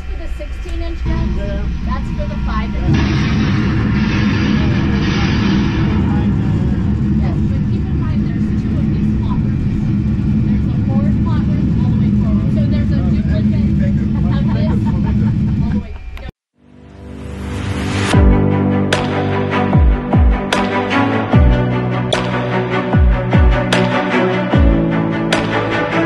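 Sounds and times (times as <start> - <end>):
loud low rumble: 0.0 - 16.3, 16.9 - 26.0.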